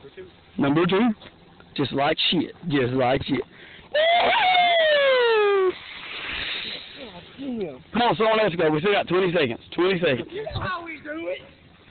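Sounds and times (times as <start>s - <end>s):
splash of water: 5.7s - 7.2s.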